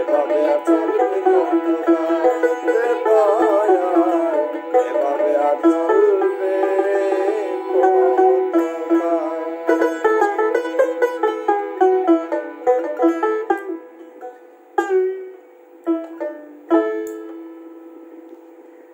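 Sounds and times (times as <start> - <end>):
plucked folk lute: 0.0 - 18.5.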